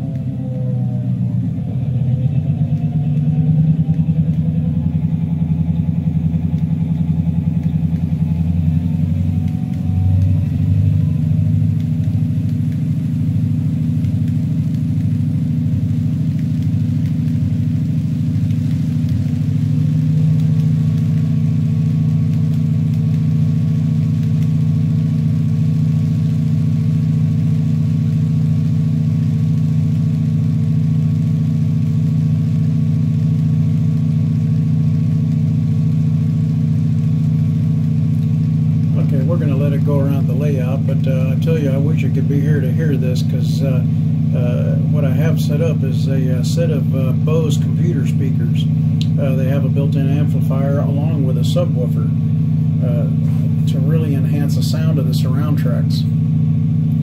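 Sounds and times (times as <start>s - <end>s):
diesel locomotive engine through speakers: 0.0s - 57.0s.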